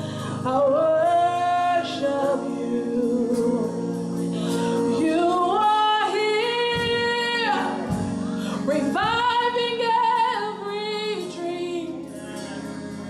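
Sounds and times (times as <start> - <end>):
gospel singing voice: 0.0 - 13.0.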